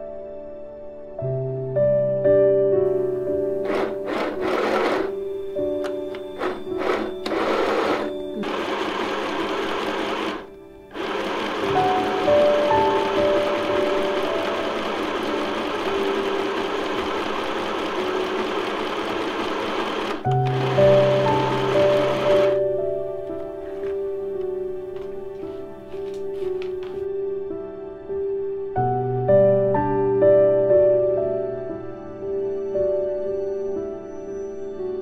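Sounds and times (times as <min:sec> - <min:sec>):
soft background music: 0:00.0 - 0:35.0
electric sewing machine stitching: 0:03.6 - 0:05.2, 0:06.2 - 0:22.7.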